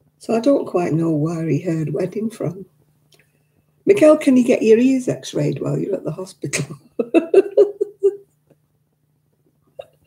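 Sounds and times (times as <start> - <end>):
faint steady hum: 0.0 - 10.0
woman laughing: 6.8 - 8.2.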